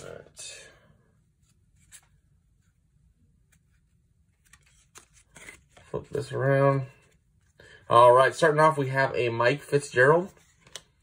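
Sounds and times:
cardboard cards being handled: 1.3s - 7.5s, 10.2s - 11.0s.

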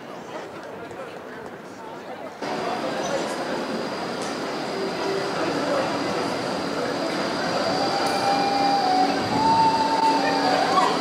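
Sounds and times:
tram rolling past: 2.4s - 11.0s.

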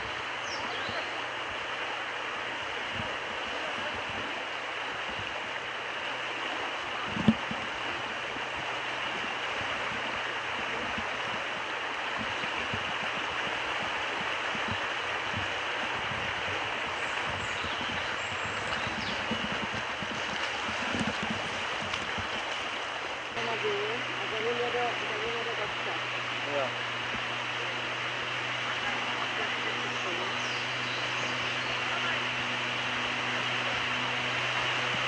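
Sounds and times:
water rushing over riffle: 0.0s - 35.0s.

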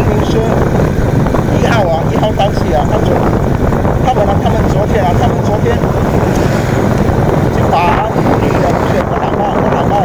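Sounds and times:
low vehicle rumble: 0.0s - 10.0s
wind buffeting microphone: 0.0s - 10.0s.

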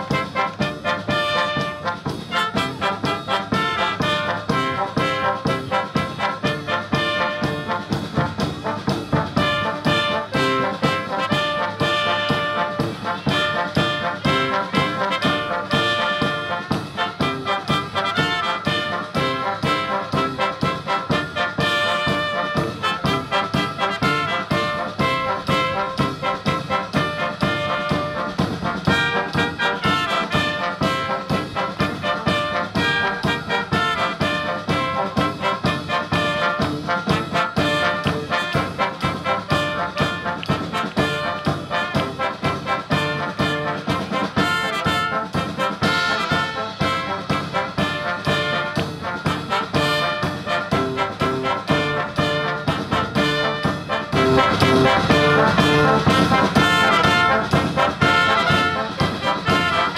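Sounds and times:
brass band with drums: 0.0s - 59.9s.

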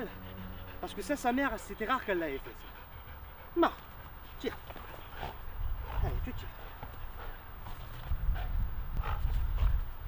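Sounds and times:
rough dog sounds: 0.0s - 9.8s
steady low rumble: 0.0s - 10.0s
dogs scuffling: 3.8s - 8.2s.

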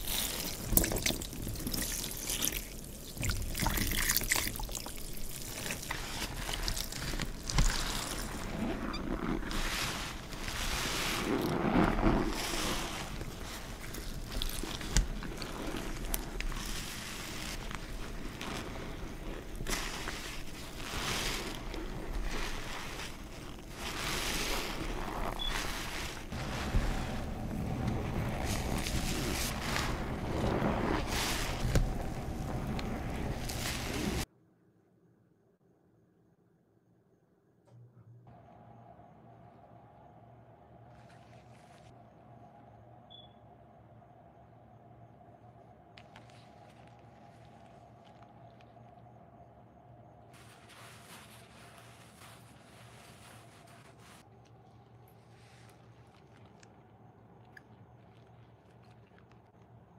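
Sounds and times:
soapy water squeezed from sponges: 0.0s - 34.3s, 40.9s - 42.0s, 46.0s - 49.2s, 50.4s - 59.9s
water trickling onto sponges: 0.0s - 34.3s, 46.0s - 49.2s, 50.4s - 59.9s.

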